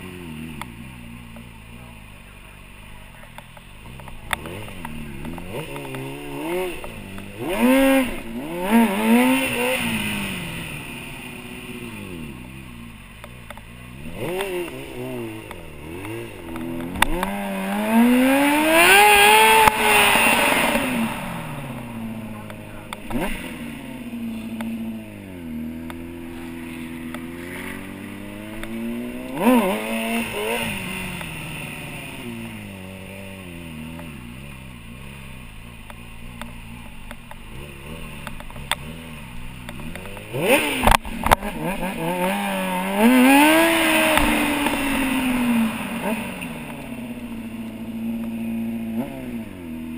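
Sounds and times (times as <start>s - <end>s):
motorcycle engine revving: 0.0s - 49.9s.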